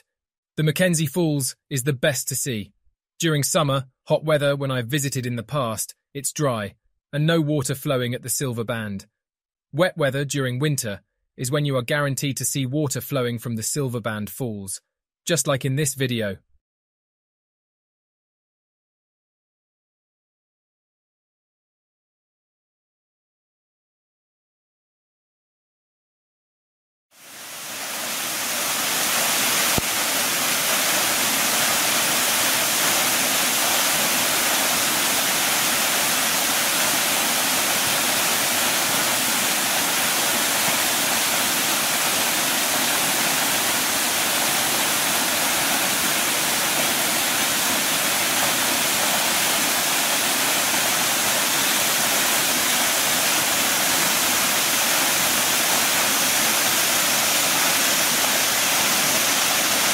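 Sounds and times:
waterfall rushing: 27.2s - 59.9s.

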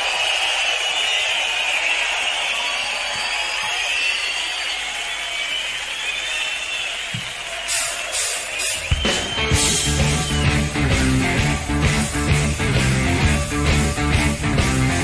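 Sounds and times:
crowd cheering and applauding: 0.0s - 15.0s.

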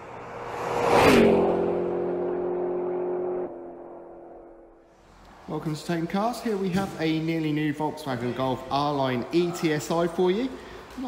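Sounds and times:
falling tone: 0.0s - 4.8s
whoosh: 0.0s - 5.0s.

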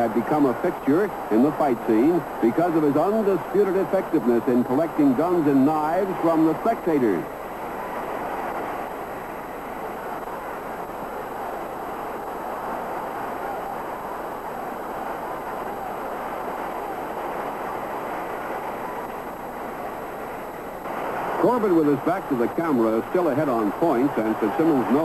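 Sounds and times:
steady rushing noise: 0.0s - 25.0s.

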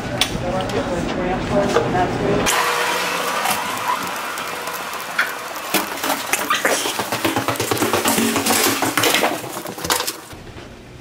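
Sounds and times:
footsteps: 3.3s - 10.6s.

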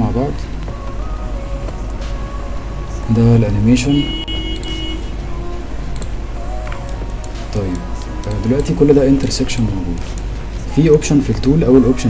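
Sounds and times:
steady low hum: 0.0s - 12.0s
faint held tone: 3.0s - 5.5s.

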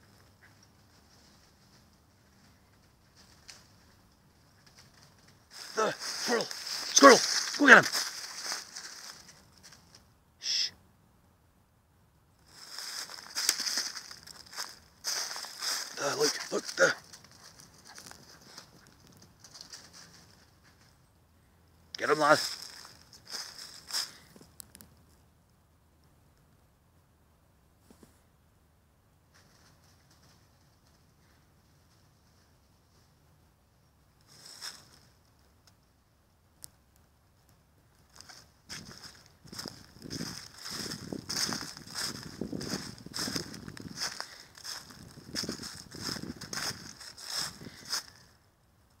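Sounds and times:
footsteps crunching dry leaves: 4.6s - 10.0s, 12.4s - 20.8s, 22.0s - 24.4s, 34.3s - 35.1s, 38.1s - 48.3s.

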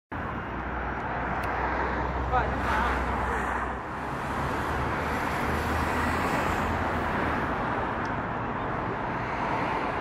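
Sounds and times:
road traffic noise: 0.1s - 10.0s.

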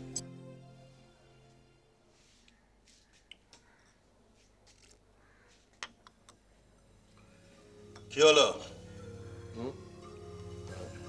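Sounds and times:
faint background music: 0.0s - 4.6s, 6.8s - 11.0s.

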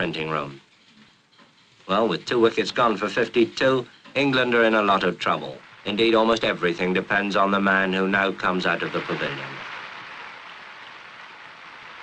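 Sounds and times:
crowd applauding: 4.6s - 12.0s.

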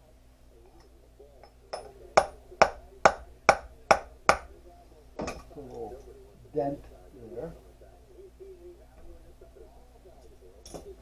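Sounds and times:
hammer striking metal: 1.4s - 4.5s.

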